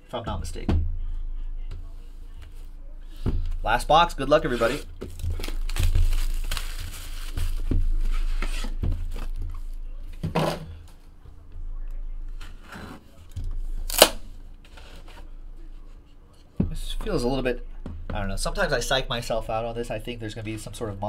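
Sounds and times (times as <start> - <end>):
plastic shrink wrap tearing: 4.4 - 9.3, 13.8 - 14.2.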